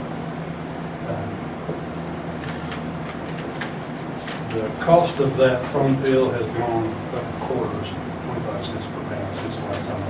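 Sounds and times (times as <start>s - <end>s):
low machinery hum: 0.0s - 10.0s
paper rustling: 2.1s - 6.3s.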